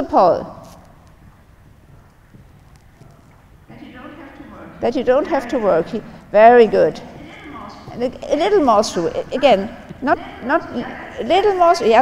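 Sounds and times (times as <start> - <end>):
horse hoofbeats on sand: 1.2 - 3.6.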